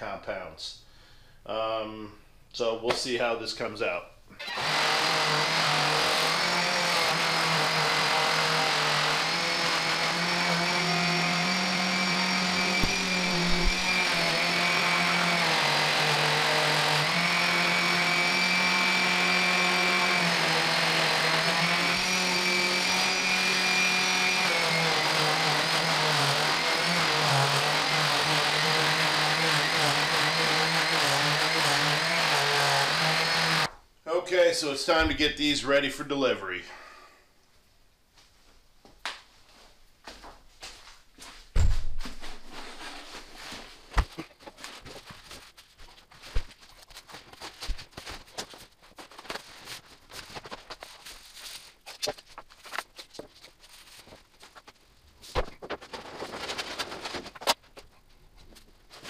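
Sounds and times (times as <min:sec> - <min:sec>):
orbital sander running: 0:04.5 - 0:33.7.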